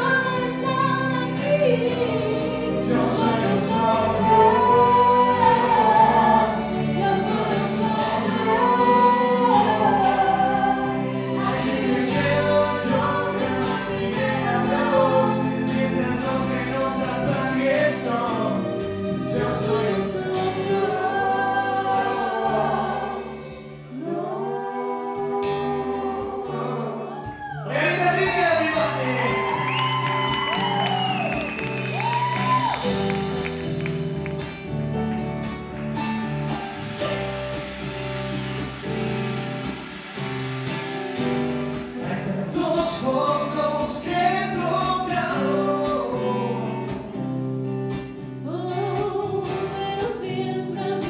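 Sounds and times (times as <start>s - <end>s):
woman and man singing duet: 0.0s - 33.0s, 42.0s - 47.4s, 48.2s - 51.0s
band playing: 0.0s - 48.6s
strummed guitar: 25.4s - 51.0s.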